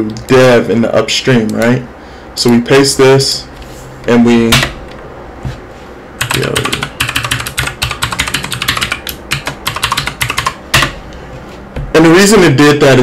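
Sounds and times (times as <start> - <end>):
computer keyboard typing: 6.2 - 11.0.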